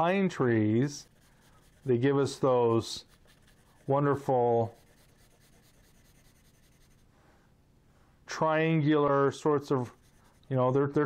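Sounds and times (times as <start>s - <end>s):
pencil rubbing on paper: 0.6s - 7.1s, 9.4s - 11.0s
pencil hatching on paper: 0.9s - 7.1s, 9.6s - 10.6s.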